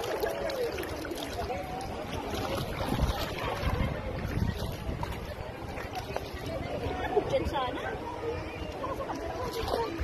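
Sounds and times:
wind buffeting microphone: 1.3 - 10.0.

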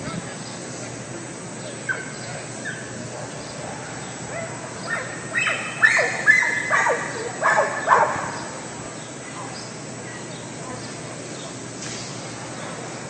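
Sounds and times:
dog barking: 2.7 - 8.5.

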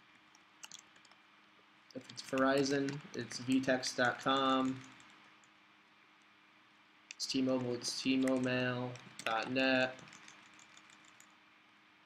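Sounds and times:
computer keyboard keystrokes: 0.3 - 1.2, 2.0 - 5.5, 7.1 - 11.4.

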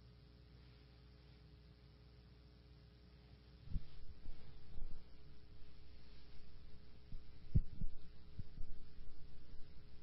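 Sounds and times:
faint steady hum: 0.0 - 10.0
dull low thumps: 3.7 - 10.0.

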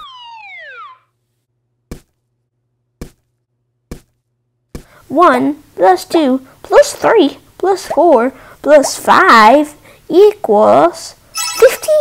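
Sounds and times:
cartoon falling whistle: 0.0 - 1.1
sharp knocks: 1.9 - 2.2.

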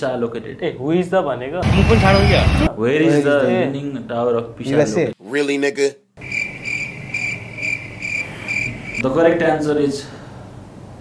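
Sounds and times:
crickets chirping: 6.2 - 9.0.

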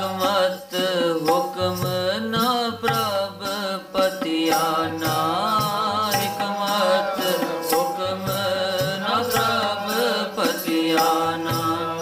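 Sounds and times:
harmonium notes: 0.0 - 12.0
man chanting: 0.0 - 12.0
tabla: 0.0 - 12.0.

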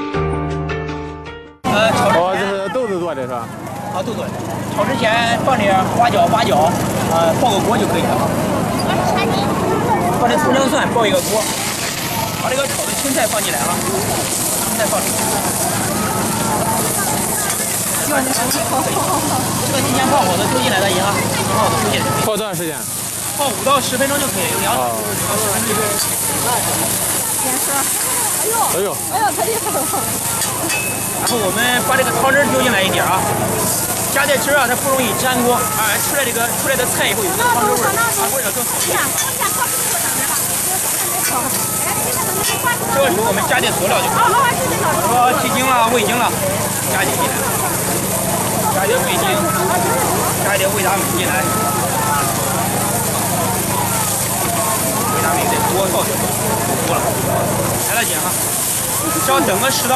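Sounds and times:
gas burner hissing: 2.0 - 59.9
food sizzling in wok: 10.8 - 59.9.

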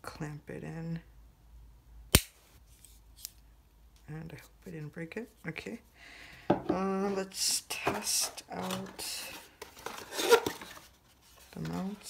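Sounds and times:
sharp plastic snap: 2.1 - 2.4.

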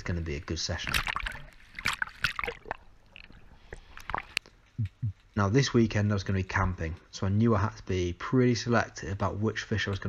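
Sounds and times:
water sloshing and splashing: 0.0 - 4.7.

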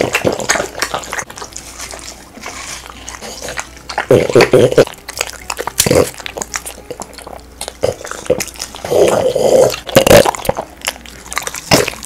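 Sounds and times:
dogs chewing watermelon: 0.0 - 12.0.

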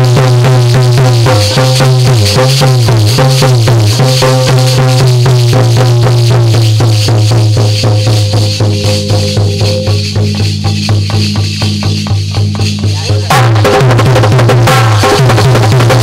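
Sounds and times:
steady percussion: 0.0 - 16.0
harmonium drone and melody: 2.8 - 12.3.

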